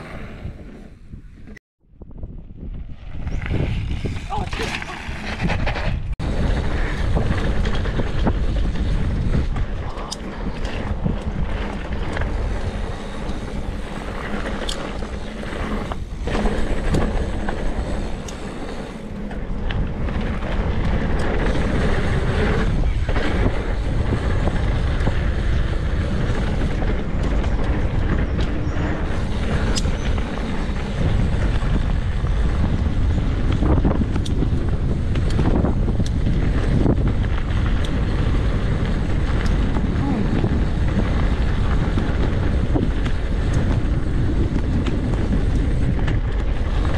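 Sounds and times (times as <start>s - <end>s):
wind buffeting microphone: 0.0s - 46.9s
bike clicks and rattles: 2.7s - 46.9s
tyres rumbling on dirt: 3.1s - 46.9s.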